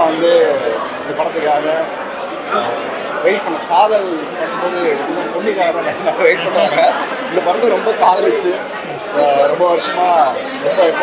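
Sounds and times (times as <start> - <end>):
voices chattering: 0.0 - 11.0
man talking: 2.5 - 11.0.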